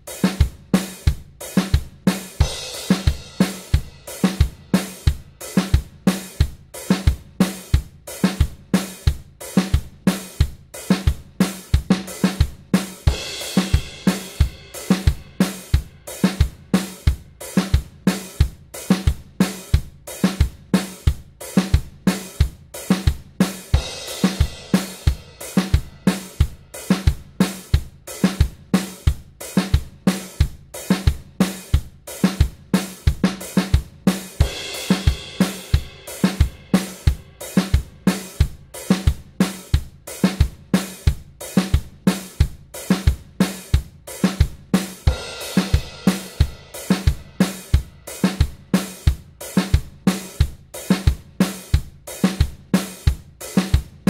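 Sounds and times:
calypso drum kit loop: 0.0s - 54.0s
bright cymbals: 0.1s - 6.4s, 12.1s - 18.4s, 20.9s - 29.0s, 32.8s - 40.2s, 44.8s - 50.9s.

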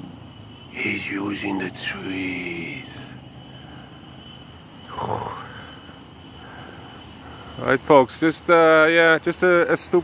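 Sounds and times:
faint high-pitched tone: 0.0s - 7.0s
rainforest ambience: 0.0s - 10.0s.

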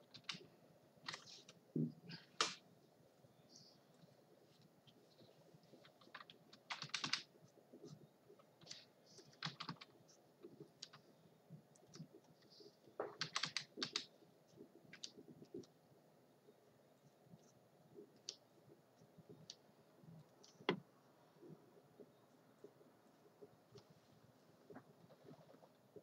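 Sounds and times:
computer keyboard clicks: 0.1s - 0.5s, 5.8s - 7.3s, 8.6s - 9.9s, 10.8s - 11.0s, 13.0s - 14.1s.

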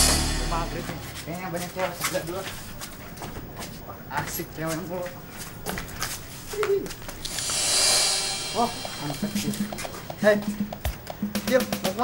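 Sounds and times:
steady low hum: 7.0s - 10.8s.

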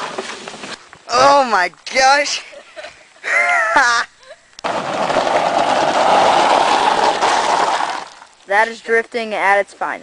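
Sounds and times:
tyres crunching over gravel: 4.8s - 8.9s.

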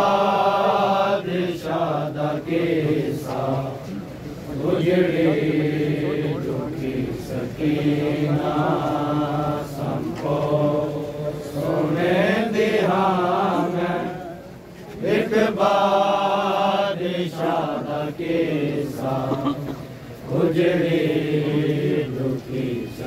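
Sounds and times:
male voices chanting a lament: 0.0s - 23.0s.

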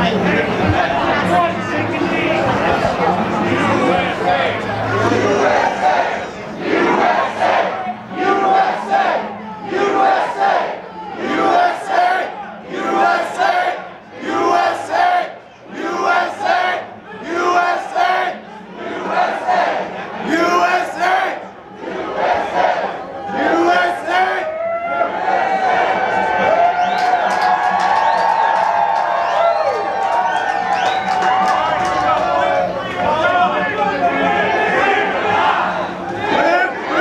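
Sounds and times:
crowd chanting in unison: 2.4s - 24.4s, 25.0s - 26.5s, 32.4s - 37.0s.

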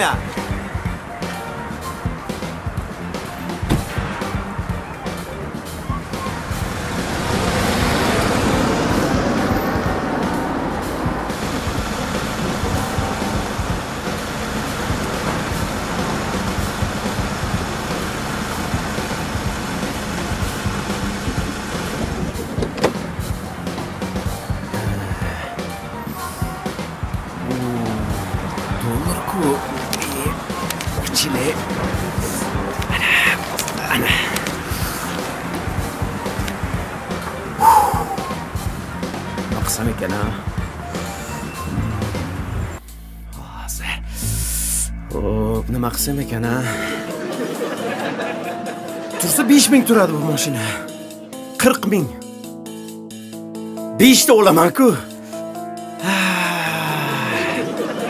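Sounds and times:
background music: 0.0s - 58.0s
car driving past: 3.3s - 24.4s, 40.4s - 42.9s.

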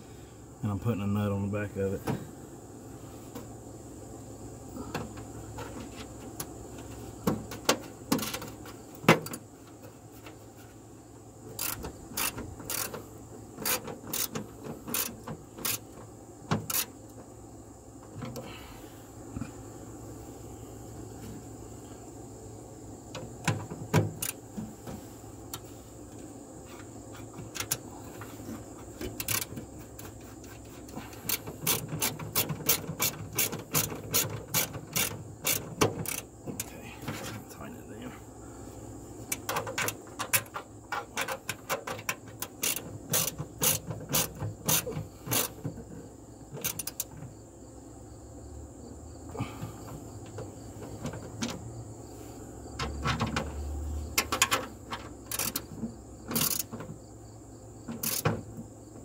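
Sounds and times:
ratchet wrench clicking: 11.5s - 13.0s, 13.6s - 15.9s, 16.6s - 16.9s, 29.2s - 29.5s, 31.2s - 36.7s, 41.2s - 45.5s, 46.6s - 47.1s, 55.3s - 55.7s, 56.3s - 56.7s, 58.0s - 58.3s.

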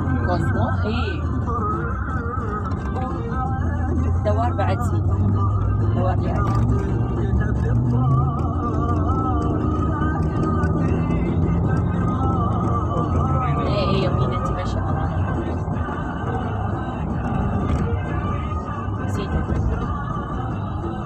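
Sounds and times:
car road and engine rumble: 0.0s - 21.0s
music with wavering voice: 0.0s - 21.0s.

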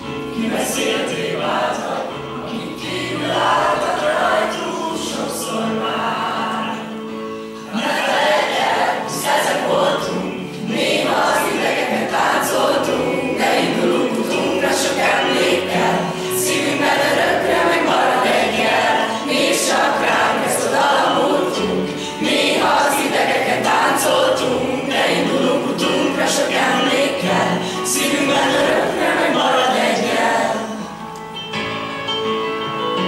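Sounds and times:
group of students singing: 0.0s - 31.0s.

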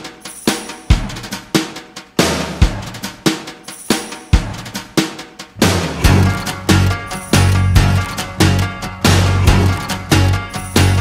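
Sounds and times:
rock drum kit beat: 0.0s - 11.0s.

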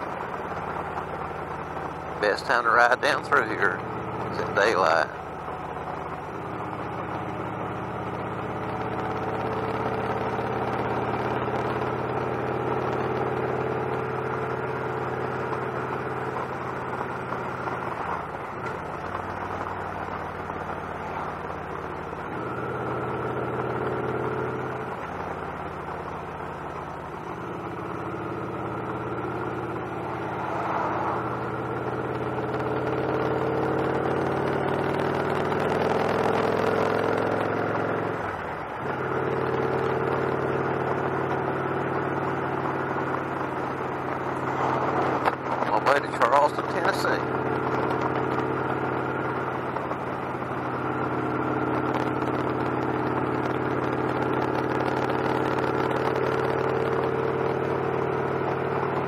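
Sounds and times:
motorcycle engine running: 0.0s - 59.0s
wind and road noise: 0.0s - 59.0s.

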